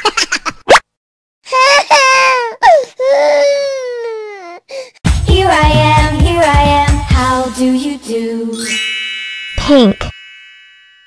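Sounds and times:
baby crying: 1.5s - 4.9s.

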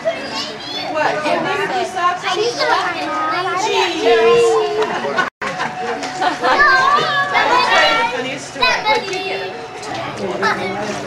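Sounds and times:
children's voices: 0.0s - 5.2s, 6.2s - 11.0s.

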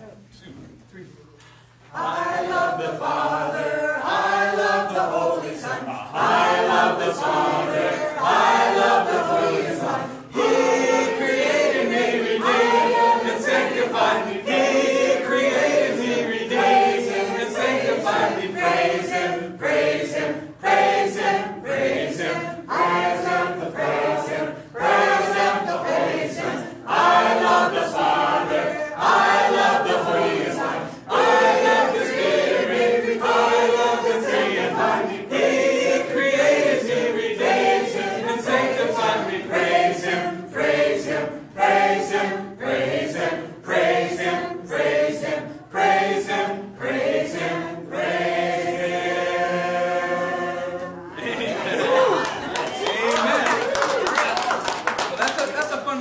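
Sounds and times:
congregation singing unaccompanied: 1.8s - 53.5s.

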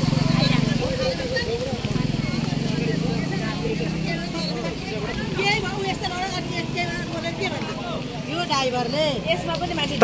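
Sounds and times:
vehicle engine running: 0.0s - 10.0s
voices chattering: 0.0s - 10.0s.

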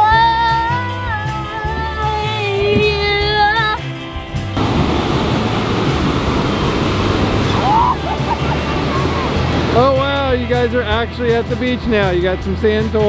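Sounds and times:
background music with singing: 0.0s - 4.6s
wind noise: 4.6s - 9.8s
ocean surf: 4.6s - 10.2s
rising cry: 5.3s - 9.8s.

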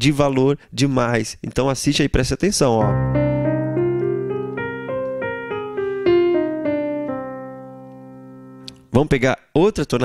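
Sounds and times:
digital piano chord and melody: 2.8s - 8.9s.

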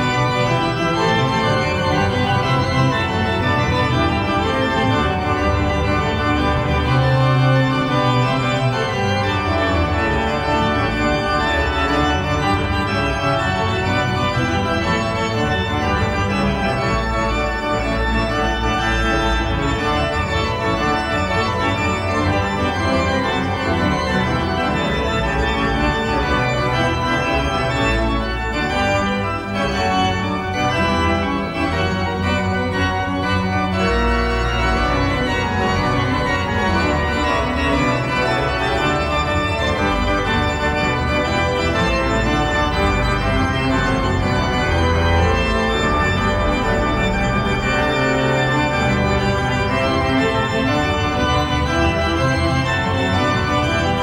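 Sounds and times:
pipe organ playing: 0.0s - 54.0s.

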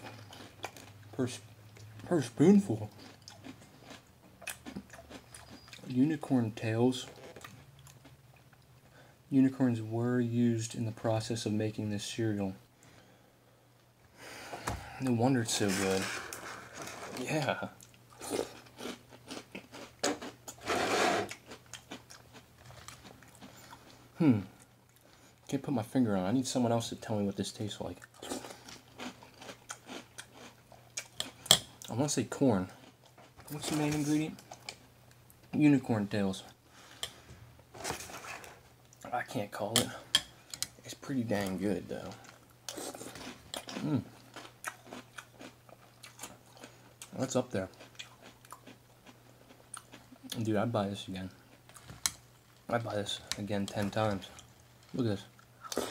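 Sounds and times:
chewing crunchy cereal: 0.0s - 6.2s, 15.5s - 25.6s, 27.9s - 34.8s, 40.7s - 50.5s.

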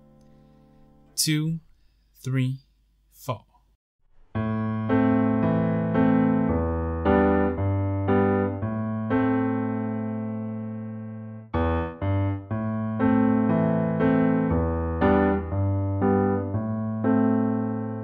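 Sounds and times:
piano playing slow chords: 0.0s - 1.2s, 4.2s - 18.0s.

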